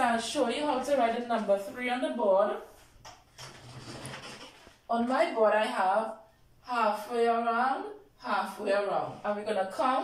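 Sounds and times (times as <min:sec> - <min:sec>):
marker scratching on whiteboard: 0:03.4 - 0:04.7.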